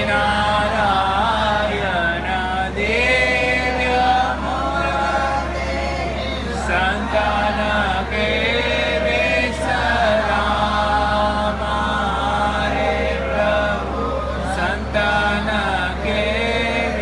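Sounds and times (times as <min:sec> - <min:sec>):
steady low hum: 0:00.0 - 0:17.0
voices chanting a hymn in unison: 0:00.0 - 0:17.0.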